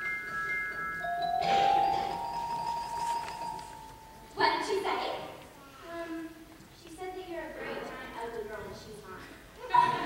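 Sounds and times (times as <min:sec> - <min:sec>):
tinkling bell chimes: 0:00.0 - 0:04.3.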